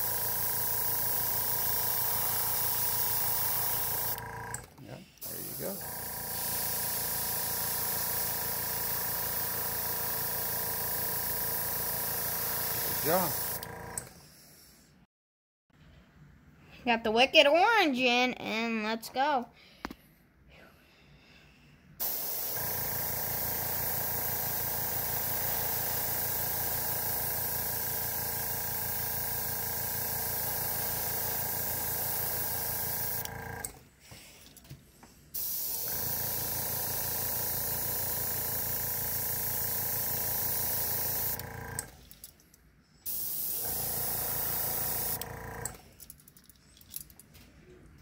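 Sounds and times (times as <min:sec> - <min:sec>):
airbrush spraying air hiss: 0:00.0 - 0:04.2, 0:05.2 - 0:13.6, 0:22.0 - 0:33.2, 0:35.4 - 0:41.4, 0:43.0 - 0:45.2.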